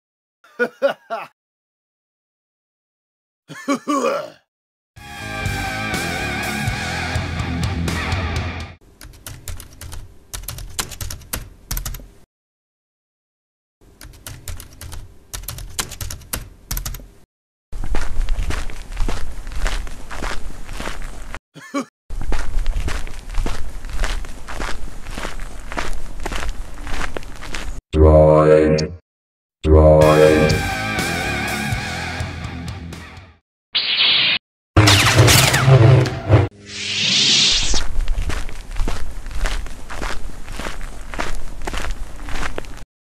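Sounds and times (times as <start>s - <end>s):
guitar-led music: 5.2s - 8.8s
computer keyboard typing: 9.0s - 12.0s, 14.0s - 17.0s
footsteps: 17.8s - 21.4s, 22.2s - 27.8s, 37.7s - 42.8s.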